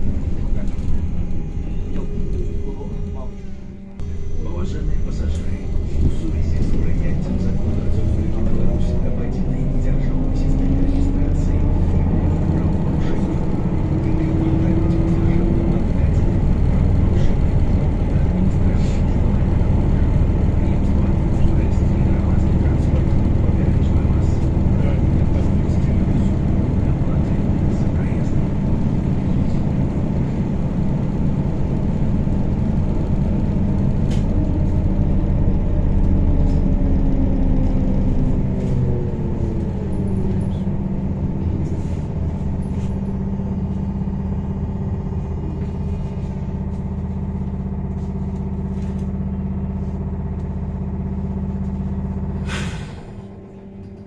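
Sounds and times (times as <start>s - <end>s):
trolleybus hum and road rumble: 0.0s - 54.0s.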